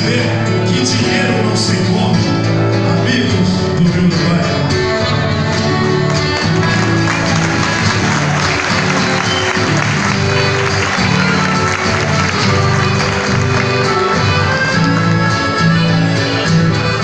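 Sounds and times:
acoustic guitars strumming: 0.0s - 17.0s
accordion playing: 4.8s - 17.0s.

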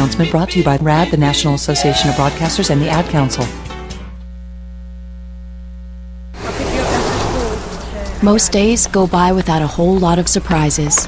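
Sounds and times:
electrical mains hum: 0.0s - 11.0s.

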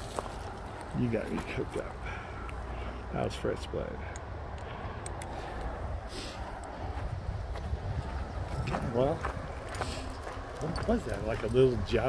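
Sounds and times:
footstep scuff: 0.0s - 1.6s
wind on microphone: 5.7s - 11.9s.

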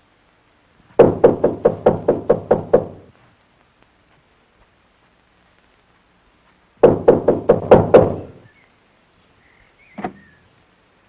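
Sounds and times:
hard knocking on a door: 1.0s - 3.0s, 6.8s - 8.3s.

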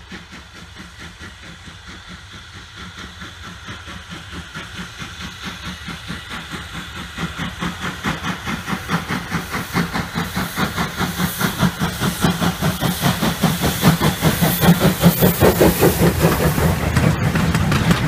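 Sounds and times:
steam hissing: 0.0s - 18.0s
steam locomotive exhaust chuffs: 0.0s - 18.0s.

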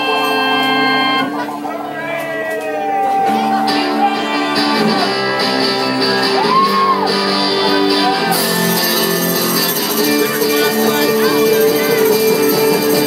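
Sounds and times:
live rock band playing loudly: 0.0s - 13.0s.

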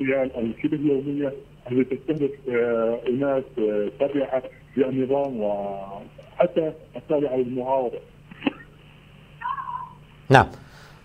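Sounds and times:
man speaking over a call: 0.0s - 8.1s, 10.3s - 10.6s.

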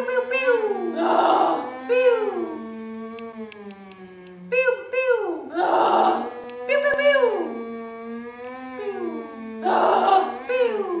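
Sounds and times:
faint ticks: 3.1s - 4.4s, 6.4s - 7.1s
voices wailing: 5.5s - 11.0s.

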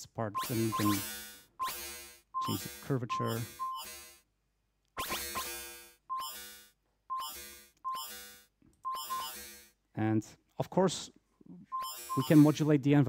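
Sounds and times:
short high beep: 0.3s - 4.0s, 5.3s - 9.5s, 11.7s - 12.7s
sequenced synthesizer notes: 0.3s - 4.2s, 5.0s - 9.7s, 11.7s - 12.7s.

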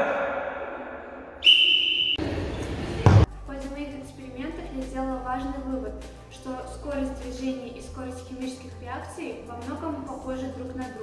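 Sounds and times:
echoing shout: 0.0s - 2.1s
high whistle blast: 1.4s - 2.5s.

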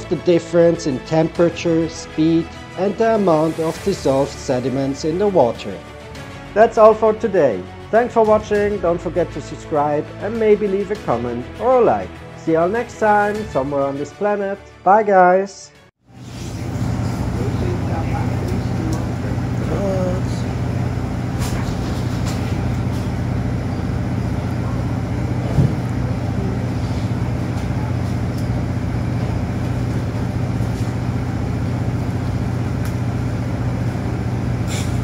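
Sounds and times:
boat engine droning: 16.2s - 35.0s.

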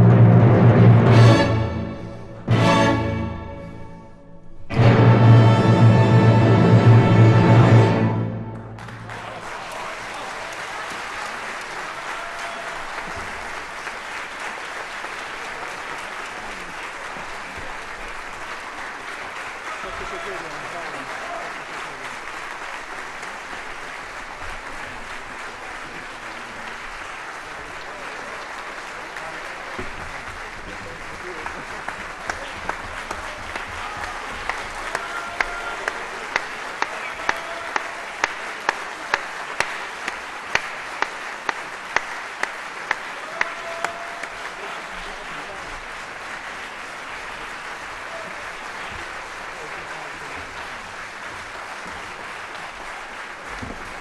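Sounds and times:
audience applauding: 4.8s - 54.0s
rhythmic clapping in unison: 6.2s - 54.0s.

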